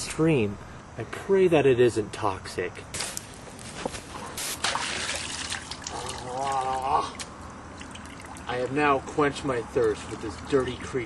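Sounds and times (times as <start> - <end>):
creek water splashing: 3.7 - 11.0.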